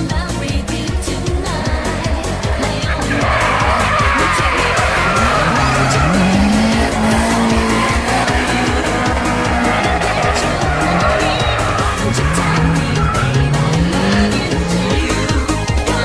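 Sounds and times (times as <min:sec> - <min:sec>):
car engines revving high: 0:00.0 - 0:16.0
music with a steady beat: 0:00.0 - 0:16.0
tyres screeching: 0:01.8 - 0:16.0.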